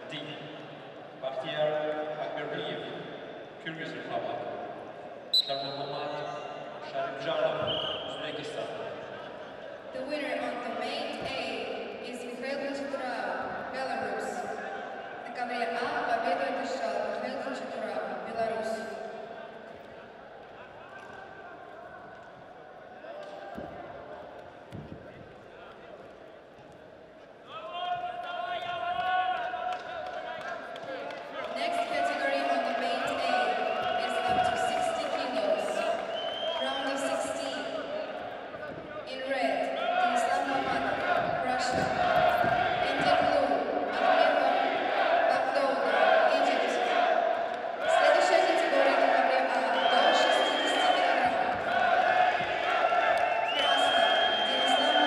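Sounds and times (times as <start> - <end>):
referee's whistle: 5.3 - 6.4, 7.6 - 8.2, 33.4 - 34.7, 35.3 - 37.1, 49.6 - 51.4, 53.2 - 55.0.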